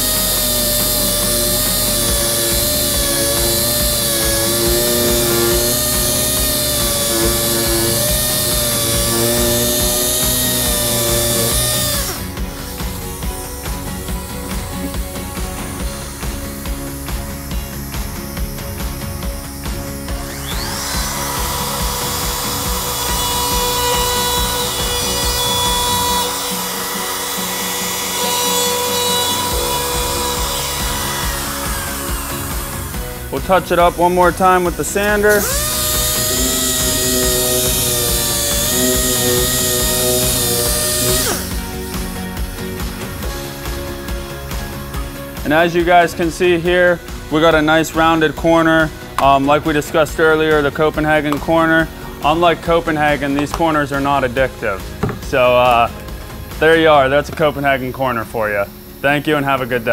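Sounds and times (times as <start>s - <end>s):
background music: 0.0s - 59.9s
orbital sander whining: 0.0s - 59.9s
router cutting wood: 0.0s - 59.9s.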